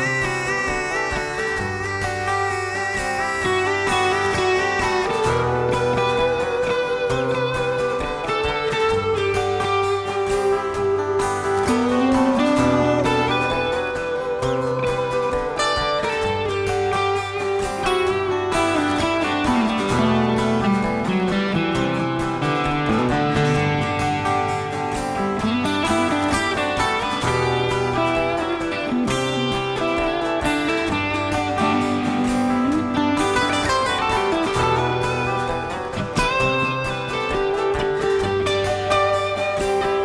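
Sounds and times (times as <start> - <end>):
man singing: 0.0 - 8.3, 11.7 - 14.6
acoustic guitar strumming: 0.0 - 40.0.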